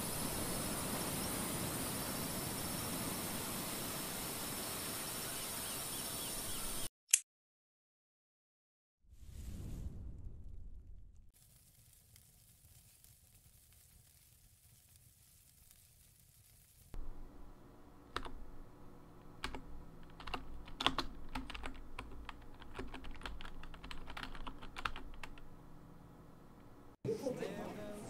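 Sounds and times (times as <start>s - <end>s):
typing on laptop keyboard: 18.1s - 18.4s, 19.4s - 25.4s.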